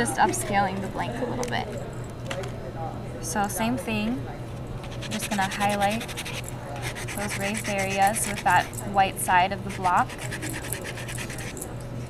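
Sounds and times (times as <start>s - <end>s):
sanding block scratching metal: 0.0s - 1.0s, 5.0s - 8.7s, 9.7s - 11.6s.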